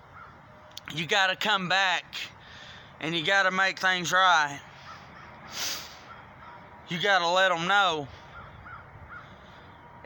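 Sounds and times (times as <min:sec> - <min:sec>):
faint short bird calls: 0:04.7 - 0:06.7, 0:08.1 - 0:09.8.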